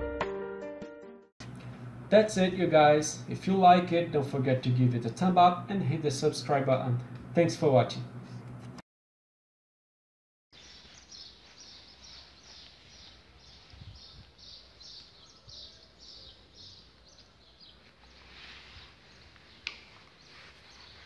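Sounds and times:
rustle: 0:16.9 - 0:21.0.

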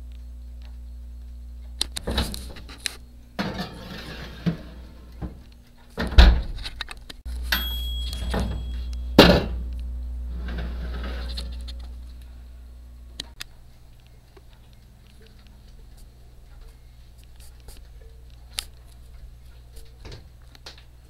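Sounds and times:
steady low hum: 0:00.0 - 0:21.0
baking tray clattering on rack: 0:03.4 - 0:05.4
oven door clunking: 0:03.4 - 0:05.4.

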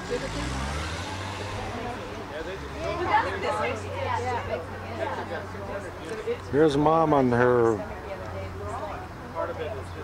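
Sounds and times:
car engine hum passing: 0:00.0 - 0:07.0.

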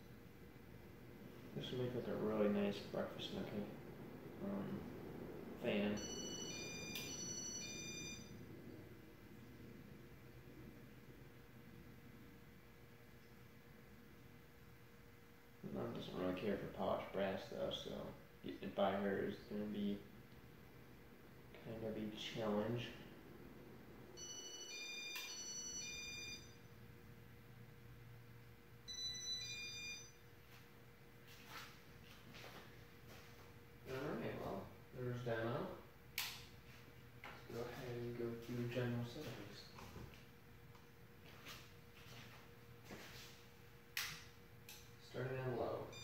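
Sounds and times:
ceiling fan motor hum: 0:00.0 - 0:46.0
high electronic tones: 0:05.9 - 0:08.4, 0:24.2 - 0:26.7.

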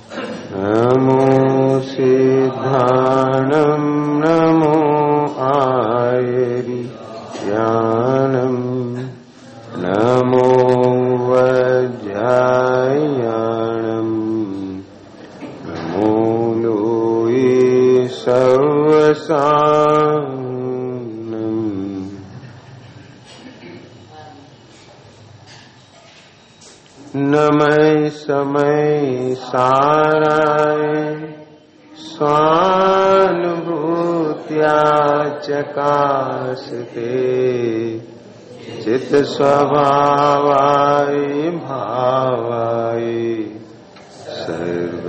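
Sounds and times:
man chanting: 0:00.5 - 0:14.9, 0:15.7 - 0:22.4, 0:27.1 - 0:38.0, 0:38.6 - 0:45.0.

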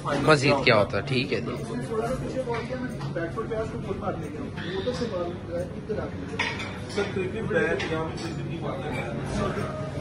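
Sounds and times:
plates and cutlery clinking: 0:05.8 - 0:10.0.

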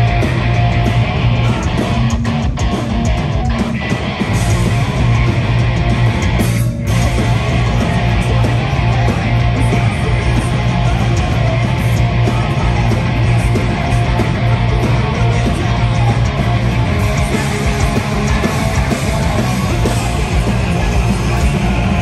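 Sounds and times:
bass guitar: 0:00.0 - 0:22.0
distorted electric guitars: 0:00.0 - 0:22.0
drums: 0:00.0 - 0:22.0.

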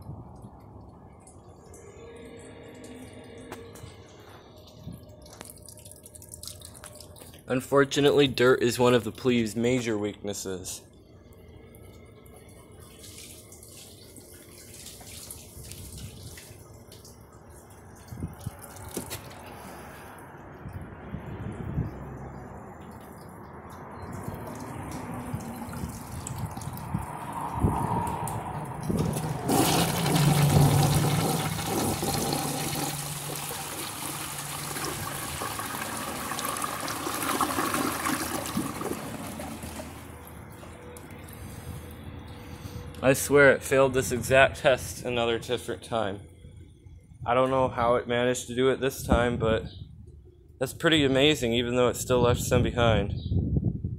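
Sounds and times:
toilet flushing: 0:29.0 - 0:40.2.

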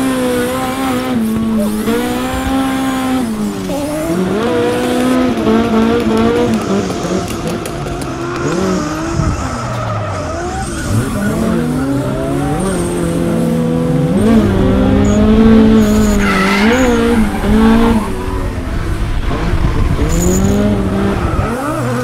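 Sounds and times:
car engines revving: 0:00.0 - 0:22.0
tire squeal: 0:06.5 - 0:22.0.

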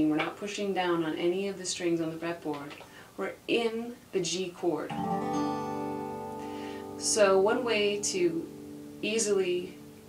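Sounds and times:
resonator guitar chord ringing: 0:04.9 - 0:10.0.

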